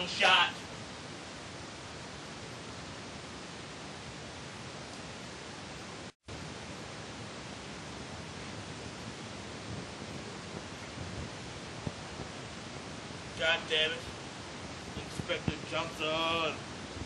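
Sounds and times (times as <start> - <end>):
recording hiss: 0.0 - 17.0.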